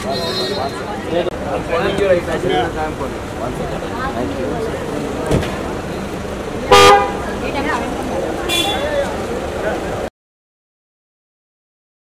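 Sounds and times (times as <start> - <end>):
car horn honking: 0.0 - 1.0, 6.6 - 7.4, 8.4 - 9.2
background chatter: 0.0 - 10.1.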